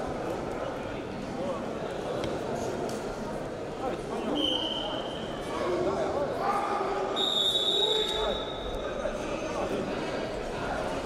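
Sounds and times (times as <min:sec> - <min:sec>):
voices in a large hall: 0:00.0 - 0:11.0.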